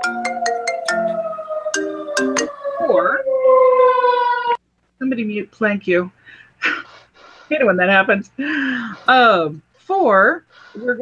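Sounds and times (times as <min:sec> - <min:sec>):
marimba phone ringtone: 0:00.0 - 0:02.5.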